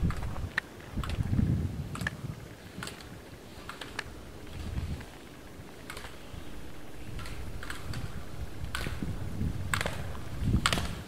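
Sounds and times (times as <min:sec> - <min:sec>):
skis scraping across snow: 0:00.0 - 0:11.0
wind rumble on microphone: 0:00.0 - 0:11.0.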